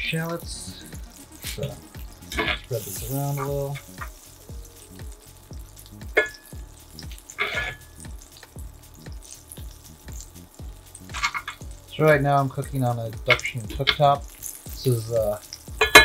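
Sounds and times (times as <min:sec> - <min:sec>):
butter sizzling in a pan: 0:00.0 - 0:16.0
metal tongs clinking on pan: 0:15.4 - 0:16.0.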